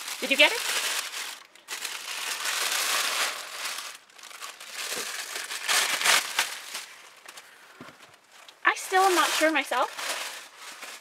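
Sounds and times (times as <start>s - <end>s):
sharp paper crackles: 0.0s - 11.0s
tissue paper crinkling: 0.0s - 11.0s.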